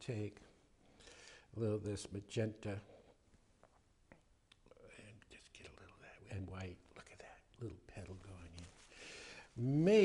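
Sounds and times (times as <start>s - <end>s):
man murmuring and whispering: 4.5s - 8.9s.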